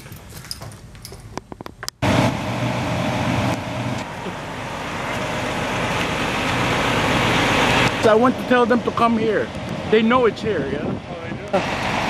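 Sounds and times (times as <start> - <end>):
large vehicle engine running: 2.0 - 12.0.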